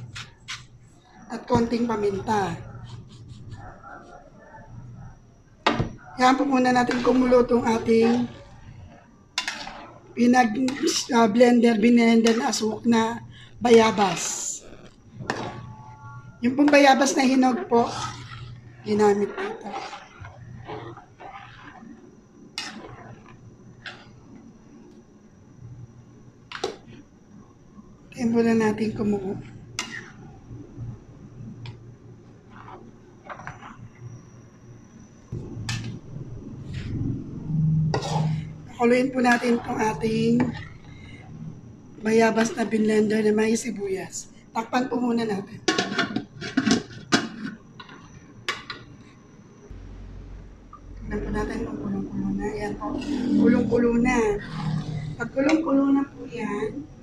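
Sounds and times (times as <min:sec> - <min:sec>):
low steady hum: 0:00.0 - 0:57.0
metal spoon stirring liquid: 0:06.3 - 0:12.8, 0:16.4 - 0:24.5, 0:29.4 - 0:30.2, 0:32.4 - 0:33.8, 0:37.9 - 0:41.1.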